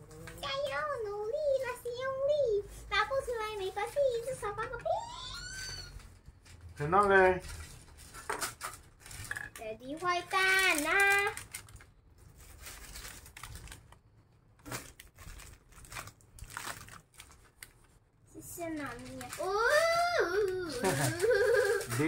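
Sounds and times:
child's wordless voice: 0.1 - 6.1, 9.5 - 11.5, 18.3 - 22.0
baking paper rustling and crinkling: 6.4 - 14.0, 14.6 - 22.0.

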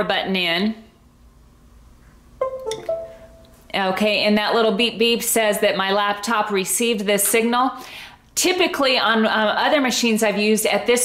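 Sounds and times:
two-note electronic chime: 2.4 - 3.6.

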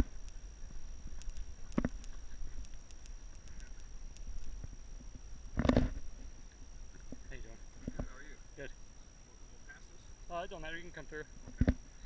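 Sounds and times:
light ticks: 0.0 - 4.7.

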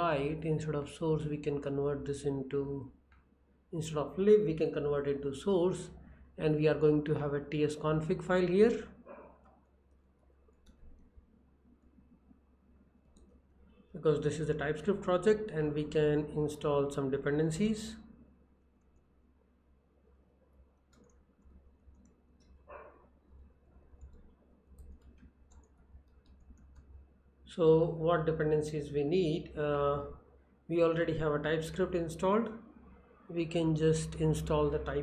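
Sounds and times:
soft keyboard clicks: 20.8 - 22.6, 23.9 - 27.0.

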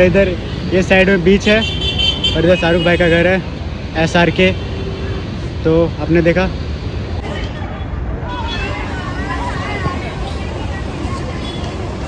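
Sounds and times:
street traffic rumble: 0.0 - 12.0
people talking: 7.2 - 12.0.

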